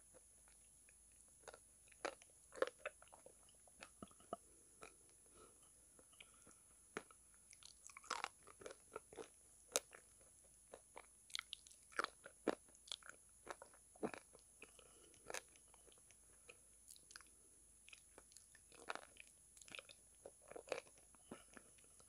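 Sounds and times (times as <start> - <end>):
crunchy chewing close up: 0.0 - 22.0.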